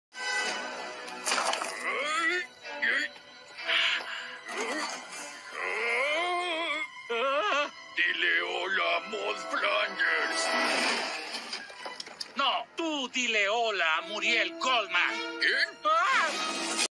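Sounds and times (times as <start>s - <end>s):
man's strained vocal cries: 3.6s - 7.8s.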